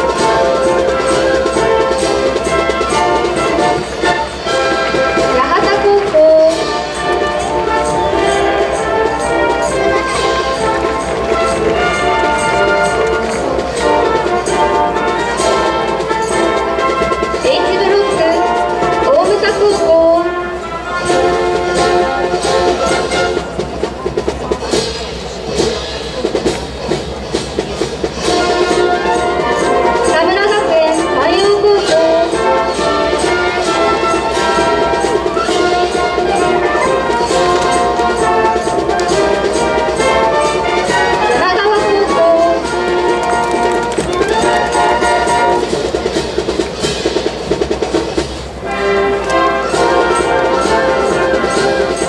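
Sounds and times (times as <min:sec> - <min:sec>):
brass band playing march: 0:00.0 - 0:52.0
steady drum beat: 0:00.0 - 0:52.0.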